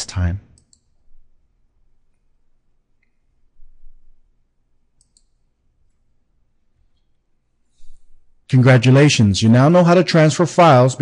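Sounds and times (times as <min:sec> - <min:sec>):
computer mouse clicks: 0:00.6 - 0:01.0, 0:05.0 - 0:06.0.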